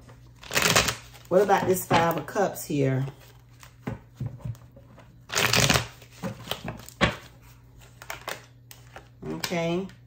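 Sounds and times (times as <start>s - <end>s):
cards being shuffled: 0.4s - 1.3s.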